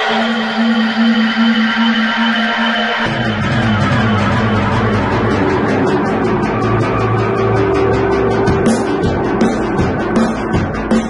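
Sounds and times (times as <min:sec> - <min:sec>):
low synth note pulsing: 0:00.0 - 0:10.2
hazy high synth wash: 0:00.0 - 0:11.0.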